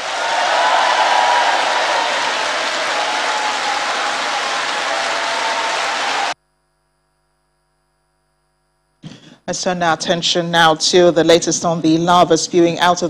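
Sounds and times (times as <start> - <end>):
audience applauding: 0.0 - 6.4.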